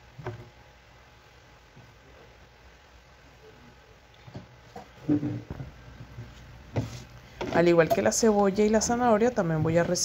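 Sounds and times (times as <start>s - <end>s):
cutting board scuffing on countertop: 6.3s - 7.1s.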